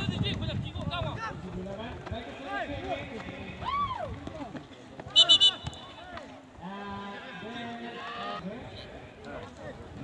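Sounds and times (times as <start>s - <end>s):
referee's whistle blasts: 5.1s - 6.0s.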